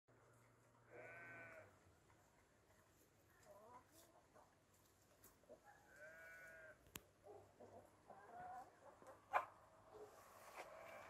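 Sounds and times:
farm animal call: 0:00.8 - 0:01.8, 0:03.3 - 0:04.2, 0:05.5 - 0:11.0.

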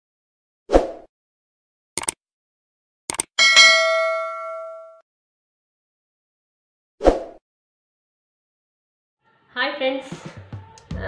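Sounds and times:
short clicks: 0:02.0 - 0:02.2, 0:03.1 - 0:03.3
bell-like ding: 0:03.4 - 0:05.0.

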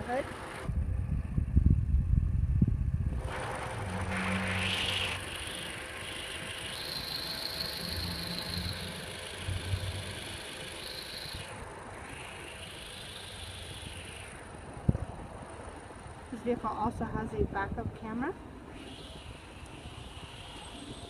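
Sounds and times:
engine hum with high whine: 0:00.0 - 0:21.0
heavy low rumble: 0:00.6 - 0:04.1
hiss: 0:04.1 - 0:14.6, 0:18.7 - 0:21.0.

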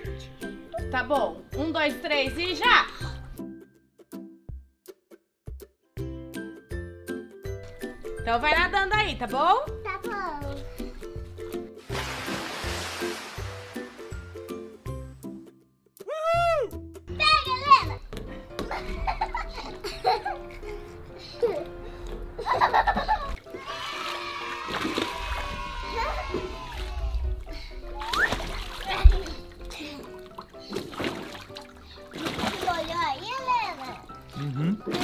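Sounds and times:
background music: 0:00.0 - 0:35.0
children splashing water: 0:11.8 - 0:14.5, 0:18.6 - 0:35.0
excited children's voices: 0:17.1 - 0:18.0, 0:23.5 - 0:27.2.

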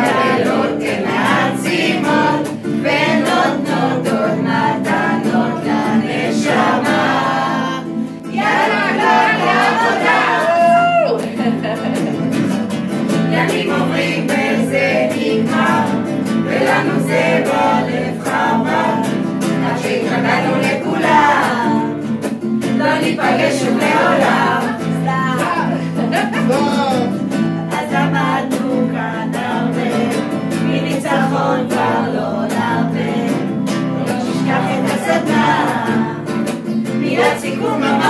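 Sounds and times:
group singing: 0:00.0 - 0:38.0
strummed acoustic guitar: 0:00.0 - 0:38.0.

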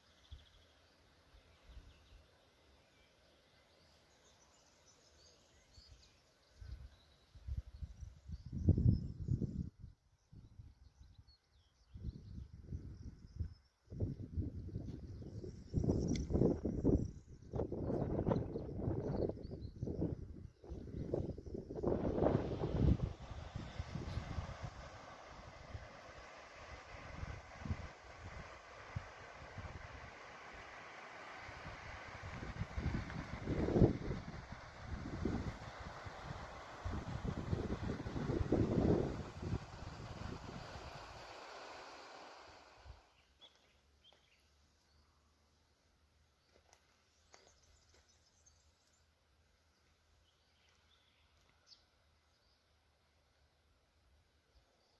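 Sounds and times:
faint outdoor background: 0:00.0 - 0:54.9
wind buffeting microphone: 0:12.0 - 0:30.8, 0:31.4 - 0:43.1.

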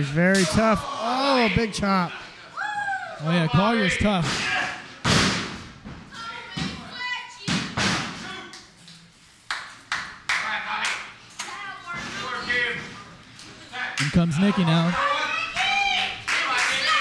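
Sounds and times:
crowd shouting: 0:00.4 - 0:03.9, 0:14.0 - 0:17.0.

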